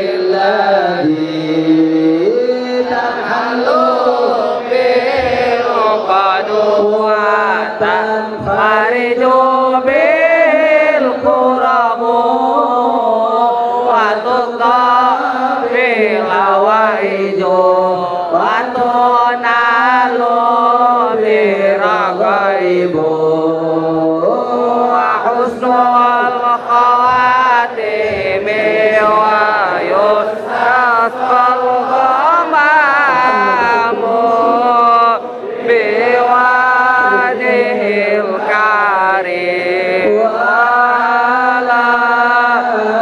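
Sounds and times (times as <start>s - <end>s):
man chanting through a microphone: 0.0s - 43.0s.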